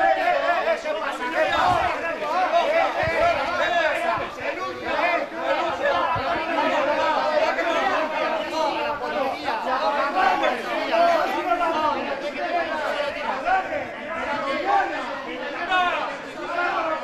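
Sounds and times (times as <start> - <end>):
overlapping voices arguing: 0.0 - 17.0.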